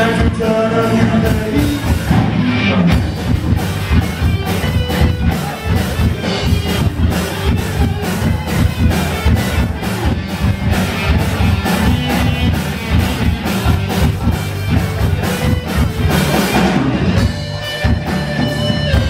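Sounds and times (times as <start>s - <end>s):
bass guitar: 0.0s - 19.0s
drum kit beat: 0.0s - 19.0s
electric guitar: 0.0s - 19.0s.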